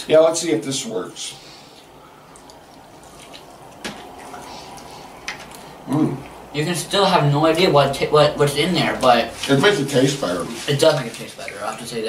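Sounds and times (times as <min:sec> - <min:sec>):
people chewing: 0:01.4 - 0:06.5.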